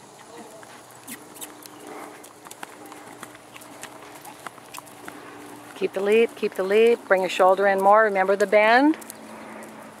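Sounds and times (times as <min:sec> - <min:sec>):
low steady hum: 0:00.0 - 0:10.0
horse hoofbeats on sand: 0:00.4 - 0:10.0.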